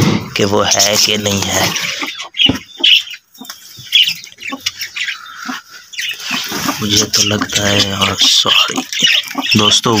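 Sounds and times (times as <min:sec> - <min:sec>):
bird squawks: 0:01.2 - 0:10.0.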